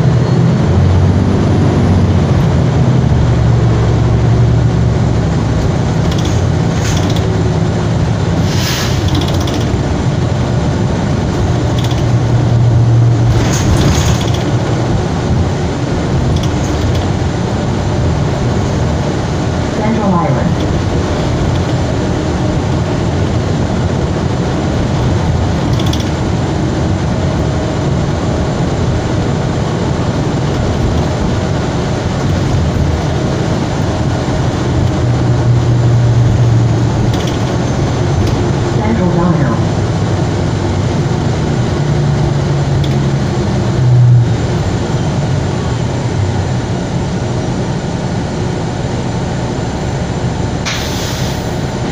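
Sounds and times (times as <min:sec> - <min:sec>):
bus drivetrain hum: 0:00.0 - 0:51.9
road noise: 0:00.0 - 0:51.9.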